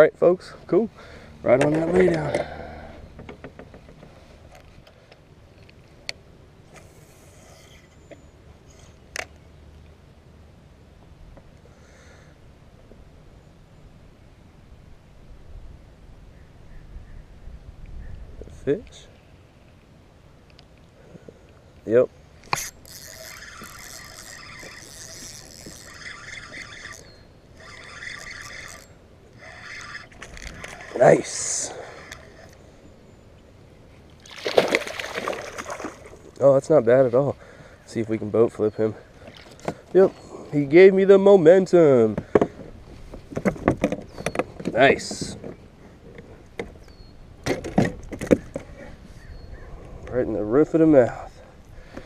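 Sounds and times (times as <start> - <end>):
fishing reel gears whirring: 22.4 - 32.6.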